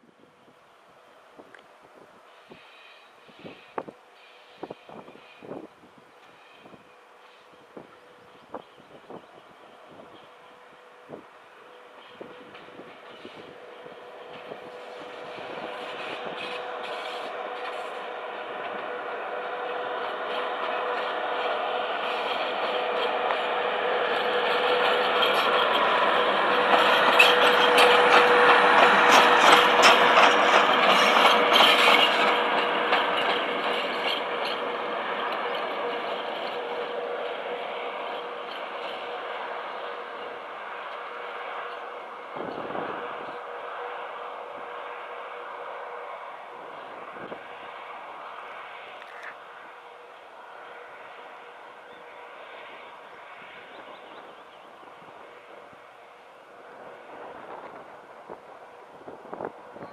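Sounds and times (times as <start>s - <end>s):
electric locomotive humming: 0.0s - 59.9s
wheels clicking over rail joints: 12.0s - 50.3s.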